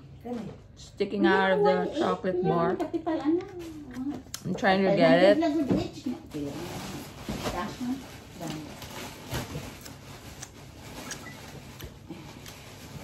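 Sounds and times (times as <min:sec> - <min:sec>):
foil wrapper crinkling: 0:06.3 - 0:13.0
person chewing: 0:09.5 - 0:13.0.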